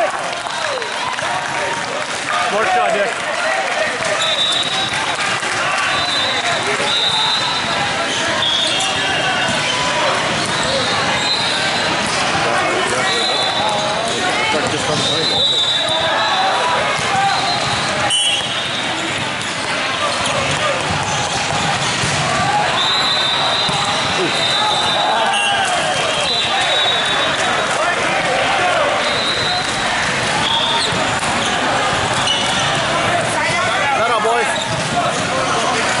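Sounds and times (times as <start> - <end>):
many overlapping voices: 0.0 - 36.0
volleyballs bouncing and struck: 0.0 - 36.0.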